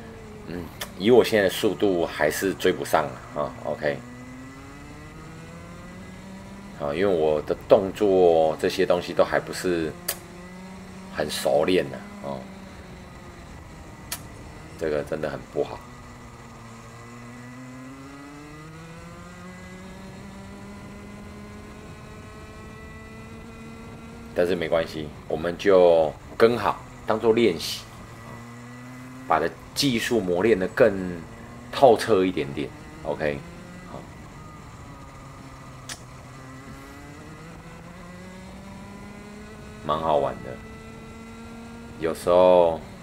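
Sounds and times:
kart engine accelerating: 0:00.0 - 0:43.0.

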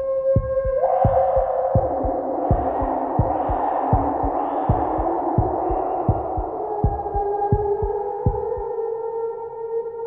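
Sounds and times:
hissy ambient pad: 0:00.0 - 0:09.6
heartbeat-like double thumps: 0:00.4 - 0:08.6
held synth tones: 0:00.4 - 0:08.6.

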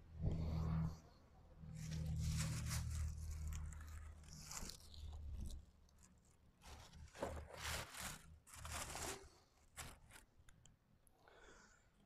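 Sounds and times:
plastic bags crinkling: 0:01.9 - 0:10.3.

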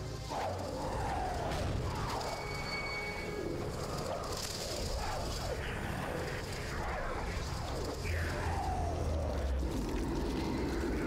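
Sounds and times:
low rumble: 0:00.2 - 0:11.0.

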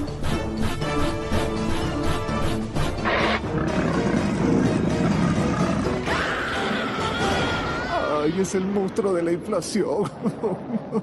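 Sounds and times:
dramatic background music: 0:00.0 - 0:08.7
cartoon monster roar: 0:03.1 - 0:08.1.

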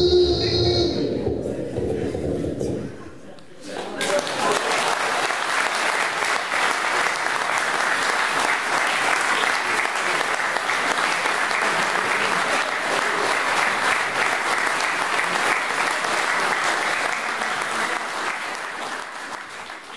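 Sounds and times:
audience applauding: 0:03.8 - 0:19.9.

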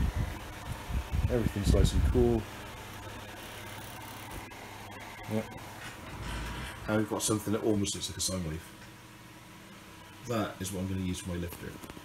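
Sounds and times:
desktop fan humming: 0:00.0 - 0:12.0.

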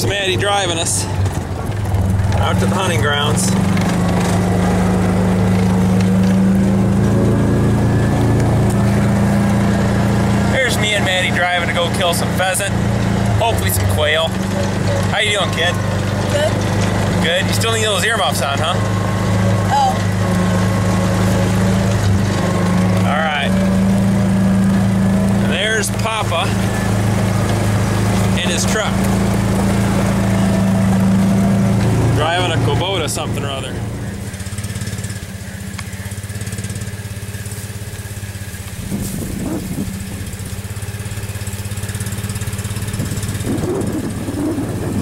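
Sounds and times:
rumble of driving over rough ground: 0:00.0 - 0:45.0
utility vehicle engine droning: 0:00.0 - 0:45.0.

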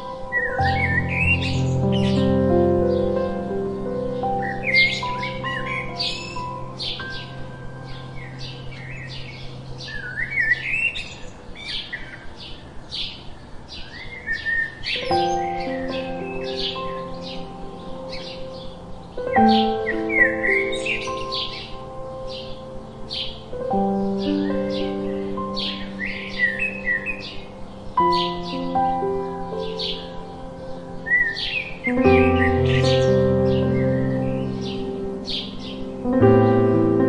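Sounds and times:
soft background music: 0:00.0 - 0:37.0
sparrows chirping: 0:00.0 - 0:37.0.

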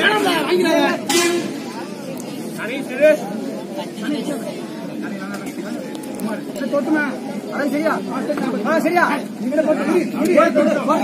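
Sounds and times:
crowd of men talking and calling out: 0:00.0 - 0:11.0.

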